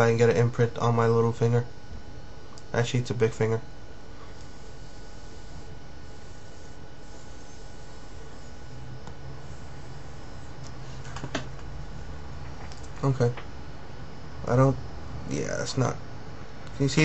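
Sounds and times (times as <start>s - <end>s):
low hiss and hum: 0.0s - 17.0s.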